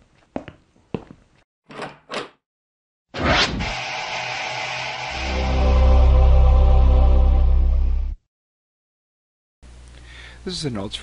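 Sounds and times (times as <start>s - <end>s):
rushing noise bursts: 3.2s - 7.3s.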